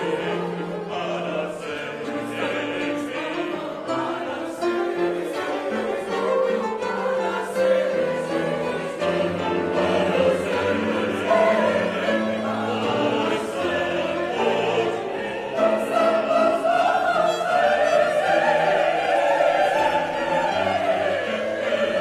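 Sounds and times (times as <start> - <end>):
choir singing sacred music: 0.0 - 22.0.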